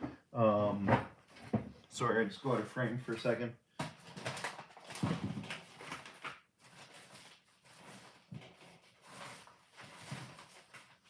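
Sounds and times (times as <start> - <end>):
rummaging knocks and rustles: 0.8 - 1.8, 3.8 - 11.0.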